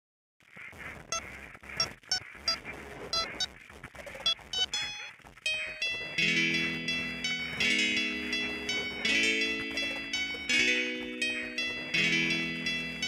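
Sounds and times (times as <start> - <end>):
electronic beeps: 1.1 - 3.5, 4.2 - 7.7.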